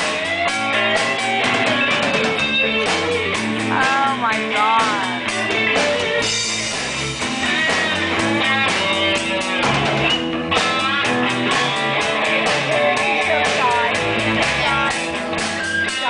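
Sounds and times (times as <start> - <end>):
bent electric guitar notes: 0.0 - 16.0
live rock band playing: 0.0 - 16.0
steady cymbal beat: 0.0 - 16.0.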